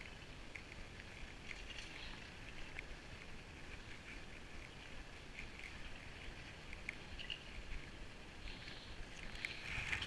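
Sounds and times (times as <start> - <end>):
faint clicks: 0.0 - 10.0
skis swishing over snow: 6.2 - 10.0.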